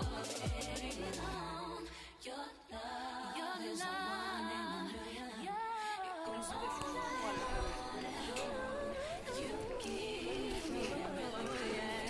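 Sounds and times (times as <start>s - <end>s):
person singing in background music: 0.0s - 12.0s.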